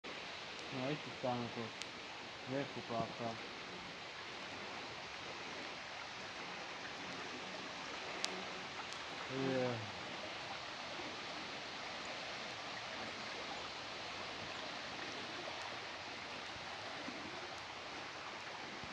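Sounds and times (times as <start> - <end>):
shallow river flowing: 0.1 - 18.9.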